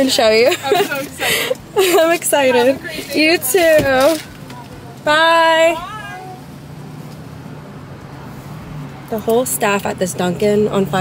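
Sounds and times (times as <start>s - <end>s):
car engine humming inside cabin: 0.0s - 11.0s
drawn-out falling voice: 5.7s - 6.4s.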